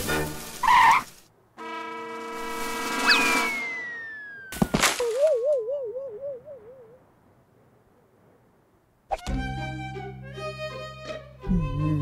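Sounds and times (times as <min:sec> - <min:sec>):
long falling whistle: 0:03.0 - 0:04.6
wavering warbling tone: 0:03.0 - 0:07.0.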